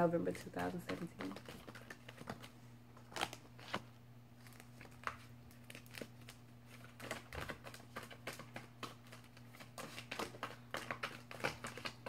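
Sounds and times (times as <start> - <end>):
cards being shuffled: 0.0 - 12.0
faint steady hum: 0.0 - 12.0.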